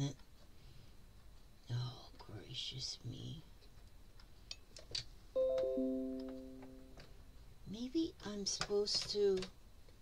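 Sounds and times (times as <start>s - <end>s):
four-note chime: 5.4s - 7.0s.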